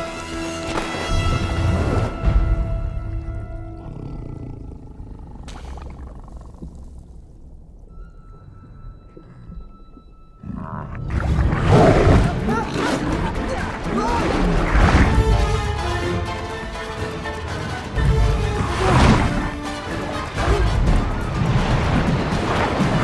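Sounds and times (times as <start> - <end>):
quiet tense music: 0.0 - 23.0
low rumble: 1.5 - 15.9
dramatic chase music: 11.3 - 23.0.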